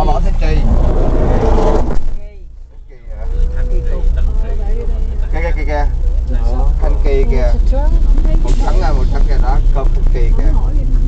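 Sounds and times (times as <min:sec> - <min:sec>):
vehicle engine and road rumble: 0:00.0 - 0:11.0.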